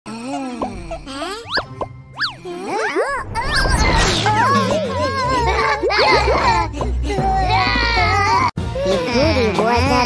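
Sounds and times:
light background music: 0:04.3 - 0:10.0.

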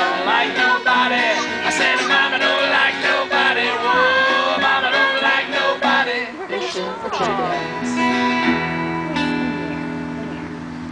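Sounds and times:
guitars strumming chords: 0:00.0 - 0:10.9.

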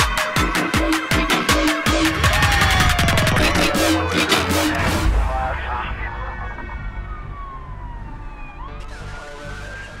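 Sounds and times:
theme tune with pulsing beat: 0:00.0 - 0:09.4
siren wailing: 0:01.8 - 0:10.0.

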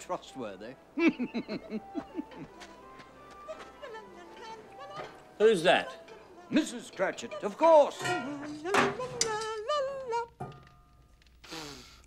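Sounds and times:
soft background music: 0:00.0 - 0:11.4.

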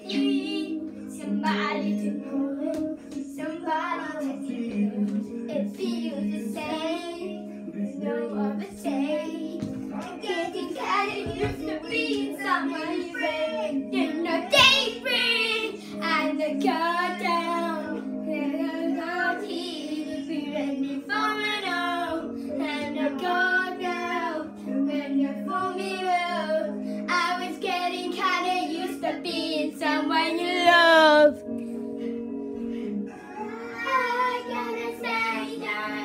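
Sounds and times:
child singing pop song: 0:00.0 - 0:31.6, 0:32.7 - 0:36.0
backing track: 0:30.3 - 0:33.2.

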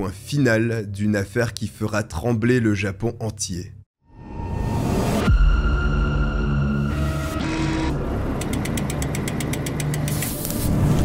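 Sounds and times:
rapid ticks: 0:08.4 - 0:10.2.

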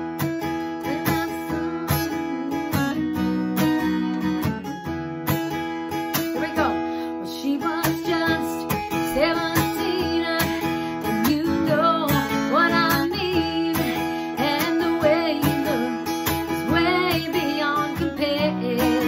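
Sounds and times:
acoustic guitar strummed: 0:00.0 - 0:19.0
woman singing: 0:00.4 - 0:04.7, 0:06.1 - 0:19.0.

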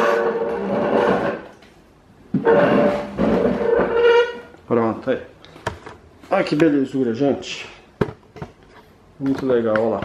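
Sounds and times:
plastic cabinet scraping squeakily: 0:00.0 - 0:01.5, 0:02.4 - 0:04.5.

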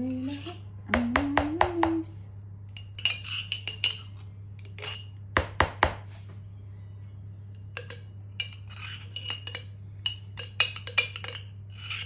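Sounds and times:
metal spoon scraping glass jar: 0:00.0 - 0:00.6, 0:02.8 - 0:05.2, 0:07.5 - 0:12.0
faint low hum: 0:00.0 - 0:12.0.

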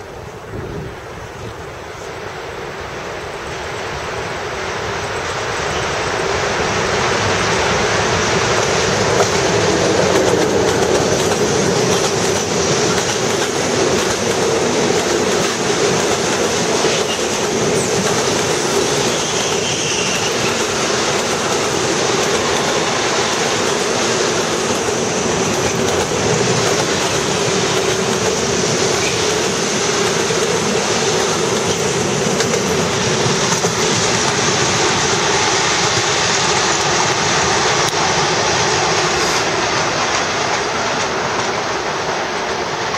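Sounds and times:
diesel locomotive passing: 0:00.0 - 0:42.9
freight train rumbling past: 0:00.0 - 0:42.9
wheels clacking over rail joints: 0:05.0 - 0:42.9.

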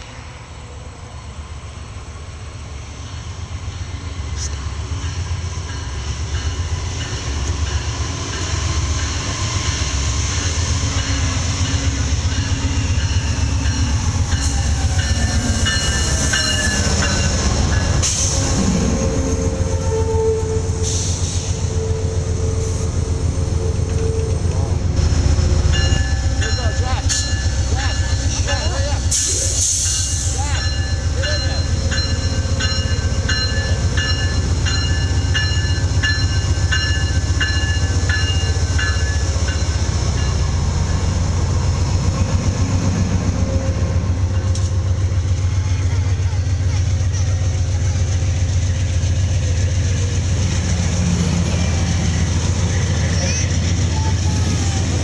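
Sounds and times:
diesel locomotive rumbling past: 0:00.0 - 0:55.0
locomotive bell ringing: 0:04.9 - 0:09.3, 0:10.3 - 0:20.4, 0:25.6 - 0:41.2.

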